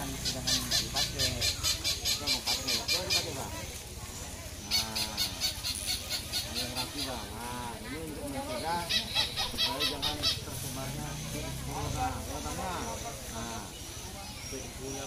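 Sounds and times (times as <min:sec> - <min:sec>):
poultry calling: 0:00.0 - 0:03.6, 0:04.6 - 0:13.8.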